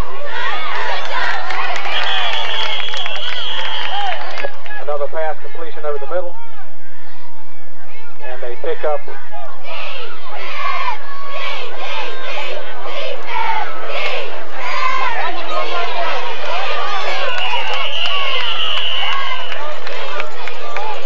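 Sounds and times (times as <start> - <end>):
crowd talking and shouting: 0.0 - 21.0
referee's whistle blast: 1.9 - 4.2, 17.2 - 19.6.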